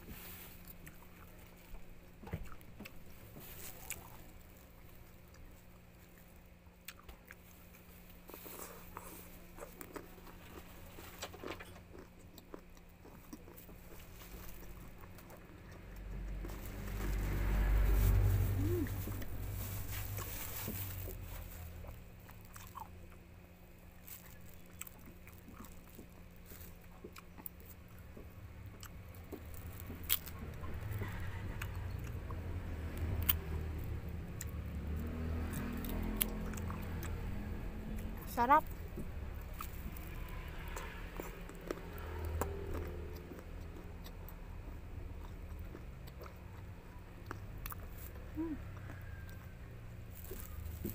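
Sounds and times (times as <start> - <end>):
person biting and chewing fruit: 0.0 - 50.9.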